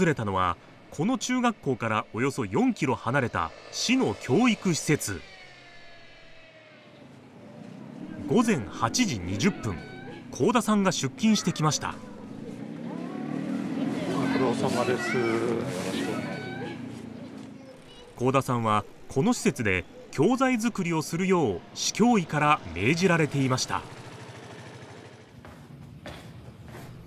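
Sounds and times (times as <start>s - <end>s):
street noise: 0.0s - 27.0s
vehicle engine humming: 0.0s - 27.0s.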